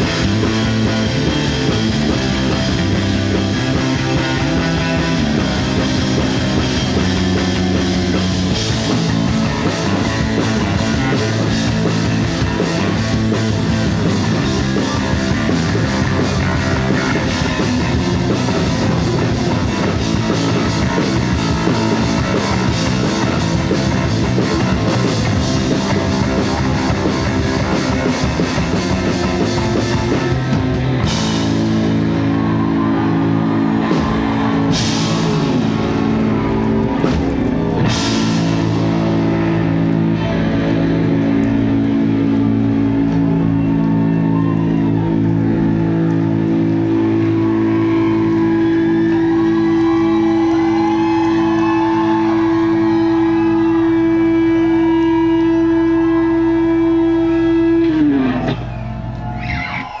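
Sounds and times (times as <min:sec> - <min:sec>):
rock band sustained chord: 0:00.0 - 0:59.3.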